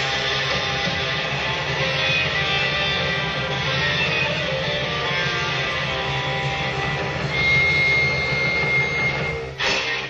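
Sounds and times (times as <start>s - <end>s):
high steady guitar tone: 0.0s - 10.0s
rock band droning chord: 0.0s - 10.0s.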